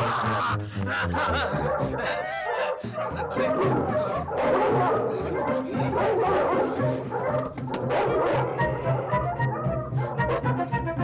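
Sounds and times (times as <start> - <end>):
background music: 0.0 - 11.0
dog barking: 1.1 - 10.6.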